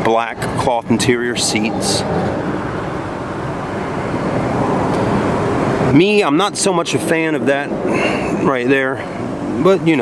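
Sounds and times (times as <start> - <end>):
steady rushing background noise: 0.0 - 10.0.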